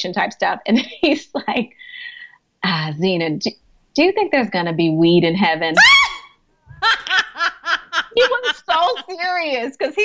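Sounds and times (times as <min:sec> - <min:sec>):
woman laughing: 0:05.8 - 0:09.3.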